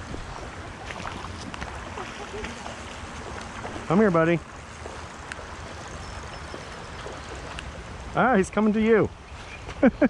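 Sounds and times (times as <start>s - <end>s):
wind rumble on microphone: 0.0s - 1.9s.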